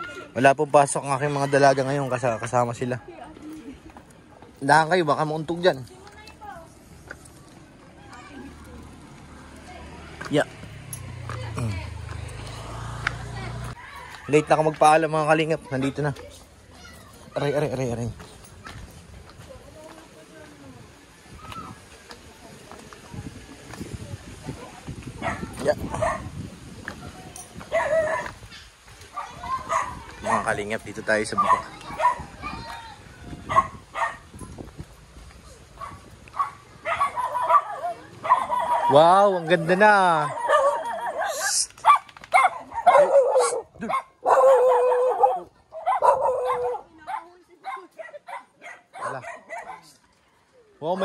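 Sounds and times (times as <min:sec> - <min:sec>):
footsteps on dirt path: 0:00.0 - 0:50.4
dog barking: 0:25.2 - 0:26.3, 0:27.7 - 0:28.4, 0:29.1 - 0:30.6, 0:31.4 - 0:32.3, 0:33.4 - 0:34.3, 0:35.8 - 0:39.5, 0:40.2 - 0:50.0.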